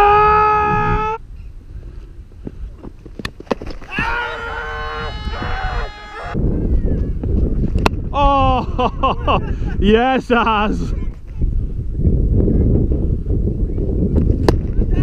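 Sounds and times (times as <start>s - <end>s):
drawn-out shouts: 3.9s - 6.4s.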